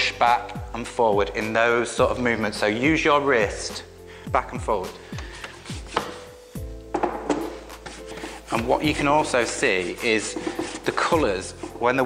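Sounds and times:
soft background music: 0.0 - 12.0
brush scrubbing wood: 5.4 - 6.4, 7.6 - 12.0.

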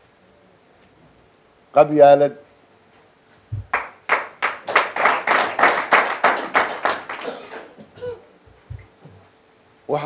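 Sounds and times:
audience clapping in rhythm: 3.6 - 7.9.

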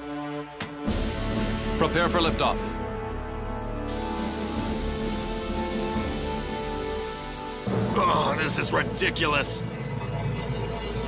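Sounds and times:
cartoon background music: 0.0 - 11.0
gas spraying from canister: 3.9 - 8.7.

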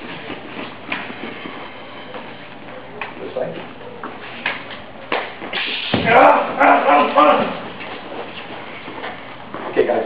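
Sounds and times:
footsteps on floor mat: 0.0 - 10.0
room noise: 0.0 - 10.0.

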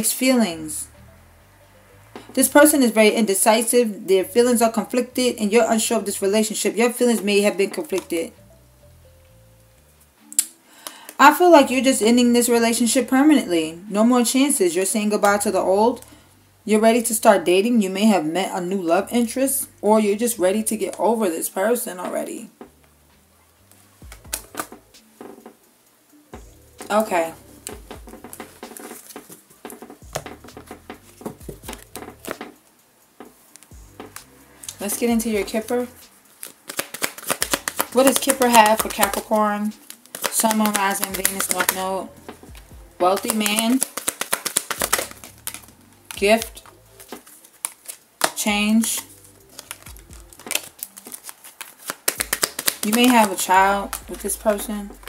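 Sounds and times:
cards tapping and flicking: 24.0 - 25.6, 27.6 - 32.6, 33.2 - 35.0, 35.7 - 55.0
deck thudding on table: 51.8 - 53.2.

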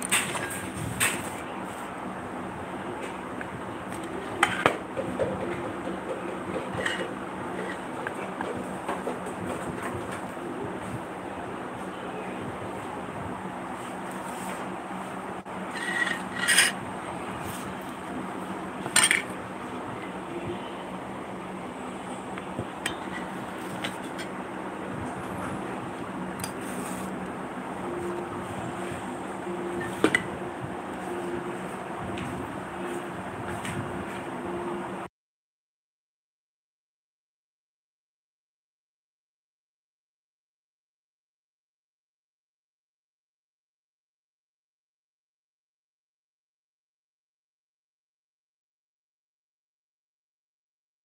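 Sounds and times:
steady background hum: 0.0 - 35.1.

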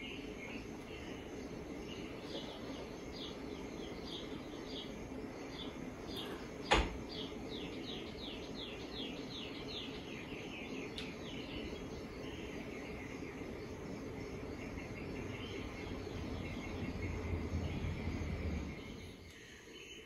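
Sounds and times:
high insect trill: 0.0 - 20.0.

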